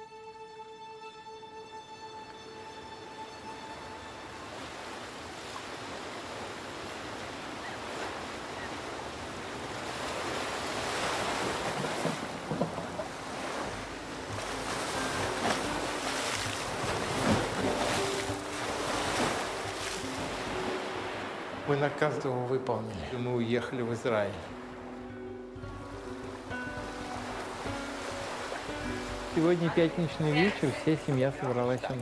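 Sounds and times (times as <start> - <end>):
surf breaking against rocks: 4.6 - 22.6.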